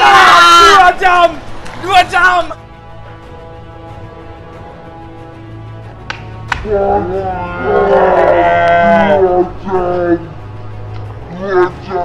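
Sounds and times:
man shouting: 0.0s - 2.6s, 6.6s - 10.3s.

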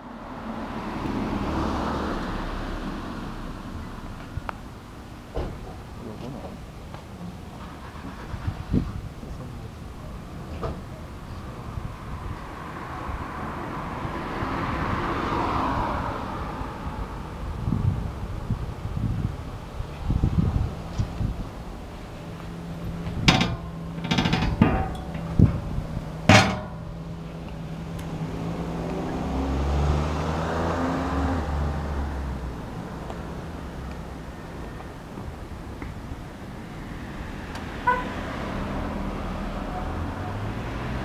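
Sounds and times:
road vehicles passing: 0.0s - 41.0s
sharp knocks: 23.1s - 27.0s.

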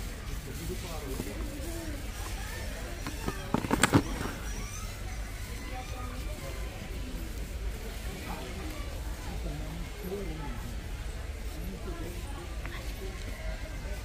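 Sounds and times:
faint shopper chatter: 0.0s - 14.0s.

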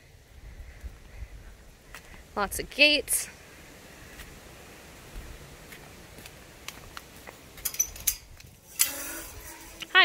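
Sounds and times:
light steps on concrete: 1.9s - 2.2s, 4.1s - 4.4s, 5.1s - 7.7s
metal gate latch clinking: 7.6s - 9.0s
chain-link gate rattling: 7.6s - 9.8s.

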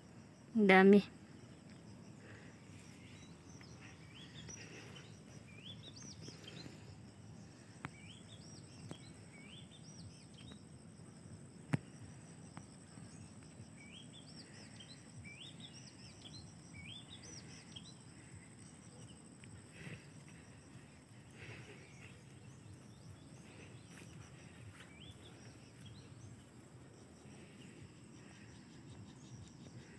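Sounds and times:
high insect drone: 0.0s - 29.9s.

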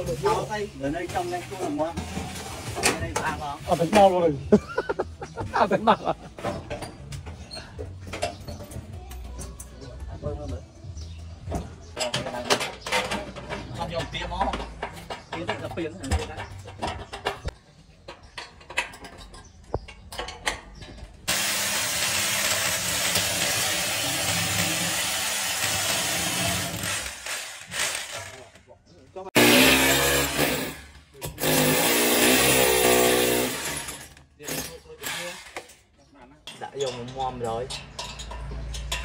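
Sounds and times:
electric drill boring into wall: 21.3s - 28.4s, 29.4s - 30.8s, 31.4s - 34.1s.

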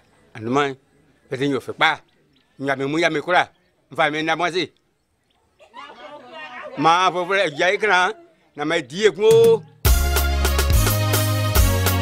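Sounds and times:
man speaking: 0.3s - 4.8s, 6.1s - 9.8s.

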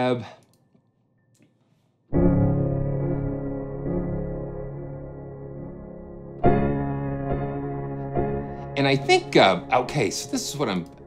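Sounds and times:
piano chord ringing: 2.1s - 11.0s.

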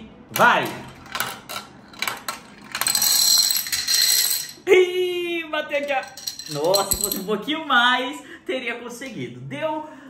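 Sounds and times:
marble rolling down plastic track: 1.0s - 4.6s
plastic dominoes toppling: 1.0s - 4.6s.

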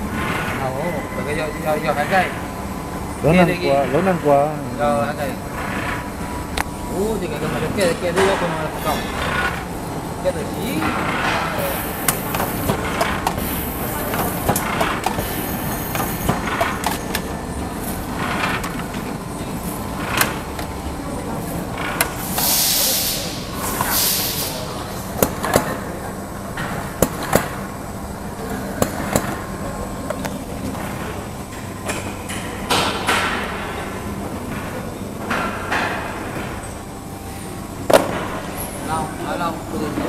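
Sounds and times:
machine mechanical rumble: 0.0s - 40.0s.

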